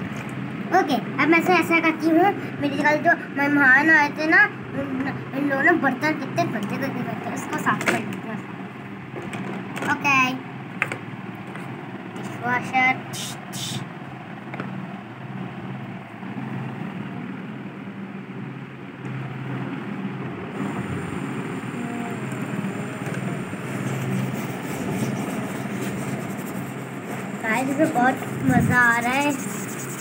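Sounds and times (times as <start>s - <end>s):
toy water pump humming: 20.6s - 30.0s
brush scrubbing plastic dishes: 23.7s - 30.0s.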